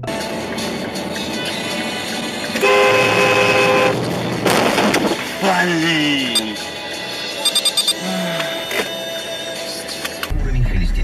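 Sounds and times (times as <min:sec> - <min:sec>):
traffic and road noise: 0:00.0 - 0:10.4
car horn blast: 0:02.6 - 0:04.1.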